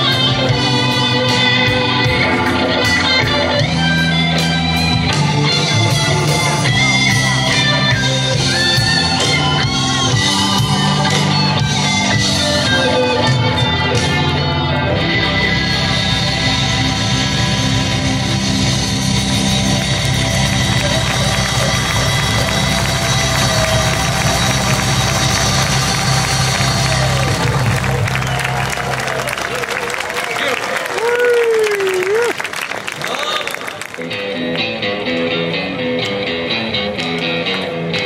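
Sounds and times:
live band playing: 0:00.0 - 0:38.0
audience applauding and cheering: 0:02.0 - 0:13.0, 0:18.6 - 0:34.3.

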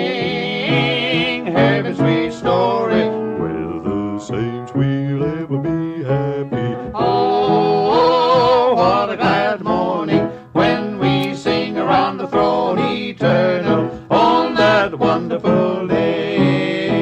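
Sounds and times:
instrumental accompaniment: 0:00.0 - 0:17.0
men singing gospel in harmony: 0:00.0 - 0:17.0.

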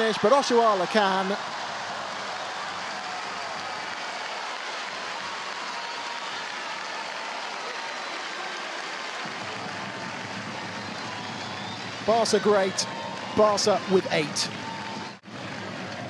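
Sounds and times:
stadium crowd cheering and applauding: 0:00.0 - 0:16.0.

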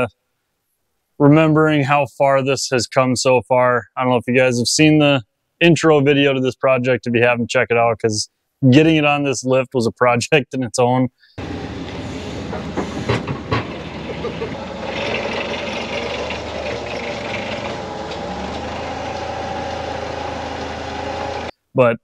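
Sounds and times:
forklift engine running: 0:11.4 - 0:21.5
knocks: 0:12.5 - 0:13.9.

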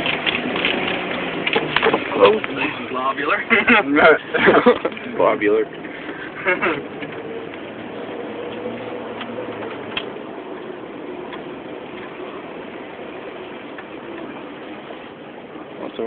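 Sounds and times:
car engine running at low speed: 0:00.0 - 0:16.0.

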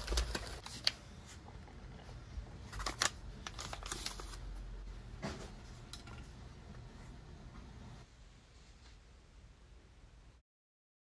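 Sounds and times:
plastic bag rustling: 0:00.0 - 0:01.0, 0:02.6 - 0:04.6.

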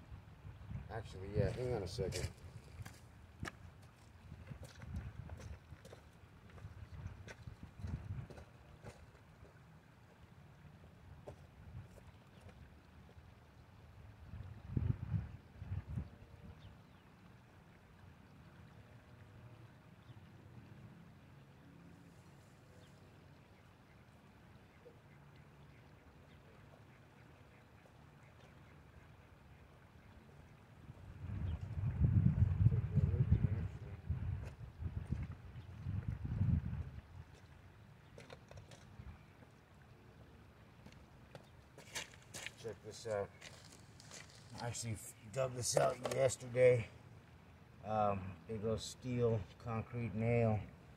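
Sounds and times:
wind buffeting microphone: 0:00.0 - 0:03.5, 0:04.2 - 0:05.9, 0:06.5 - 0:08.5, 0:14.2 - 0:16.7, 0:30.9 - 0:37.3
flowing river water: 0:00.0 - 0:32.1, 0:36.7 - 0:50.9.

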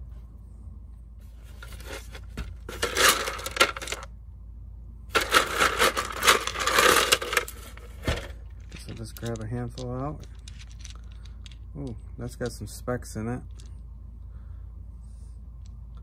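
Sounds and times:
wet pebbles clattering in plastic tub: 0:01.6 - 0:04.1, 0:05.1 - 0:11.0.

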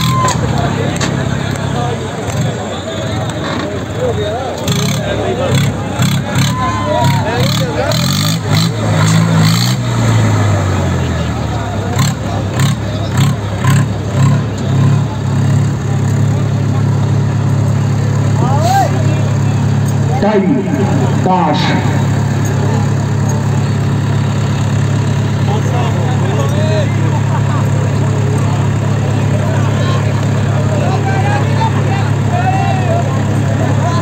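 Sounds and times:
people shouting: 0:00.0 - 0:00.5, 0:06.2 - 0:07.9, 0:18.4 - 0:19.1, 0:30.8 - 0:34.0
diesel tractor engine under load: 0:00.0 - 0:34.0.

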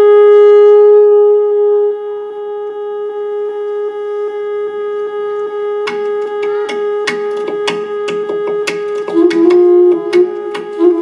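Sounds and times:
soprano saxophone note: 0:00.0 - 0:11.0
acoustic guitar strikes: 0:05.8 - 0:11.0.

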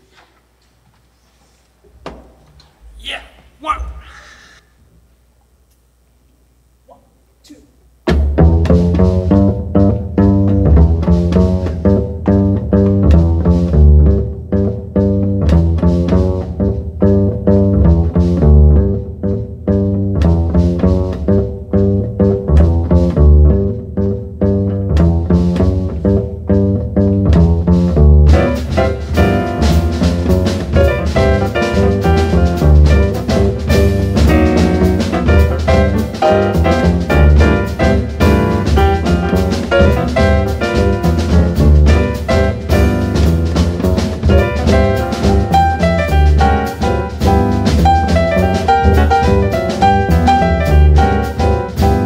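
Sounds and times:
cymbals and drum kit: 0:06.9 - 0:52.0
plucked double bass: 0:08.0 - 0:52.0.

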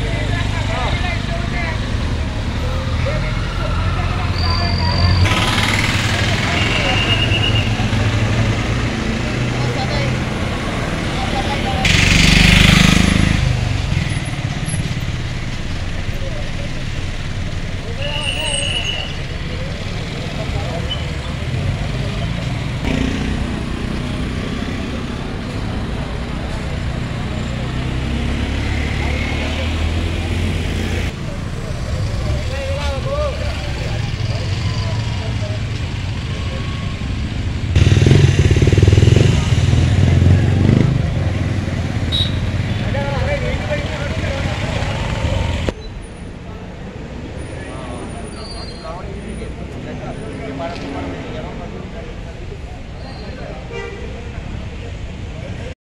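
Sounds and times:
minibus passing: 0:00.0 - 0:48.3
crowd talking: 0:00.0 - 0:55.8
vehicles creeping past: 0:00.0 - 0:55.8.

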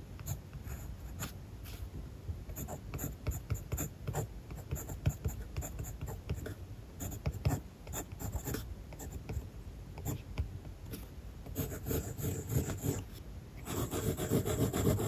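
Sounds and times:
pencil scratching on paper: 0:10.9 - 0:15.0.

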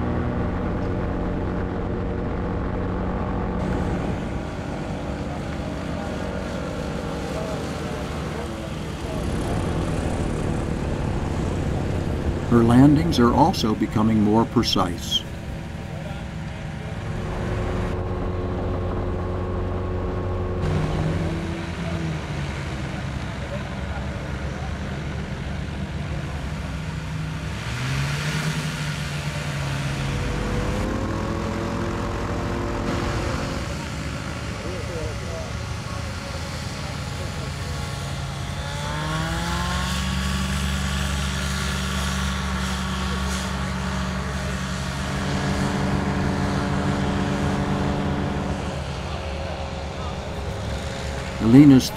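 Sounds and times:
ultralight engine and propeller: 0:00.0 - 0:51.9.

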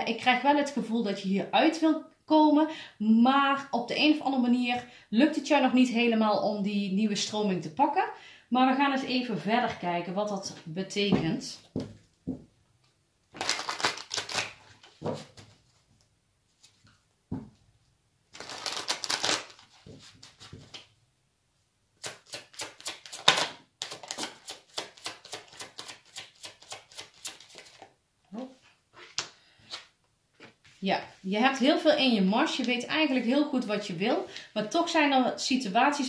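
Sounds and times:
person speaking: 0:05.3 - 0:11.7, 0:28.3 - 0:28.6, 0:30.8 - 0:36.0
cards shuffled by hand: 0:13.4 - 0:15.6, 0:18.3 - 0:20.9, 0:22.0 - 0:27.9.

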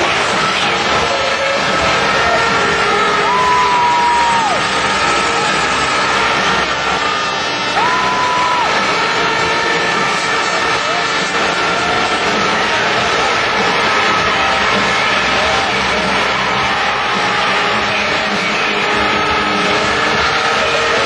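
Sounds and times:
crowd noise: 0:00.0 - 0:21.0
motorcycles racing: 0:00.0 - 0:21.0.

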